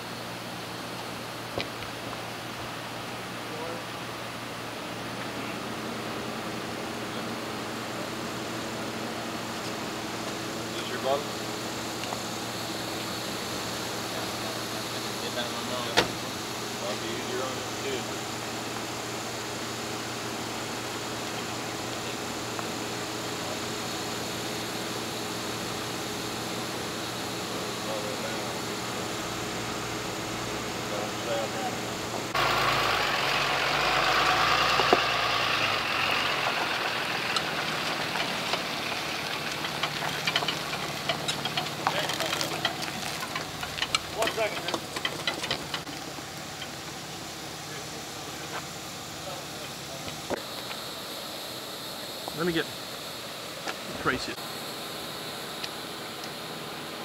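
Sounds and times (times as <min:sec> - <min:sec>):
vehicle engine idling: 0:00.0 - 0:57.0
scattered clanks and knocks: 0:38.0 - 0:46.8.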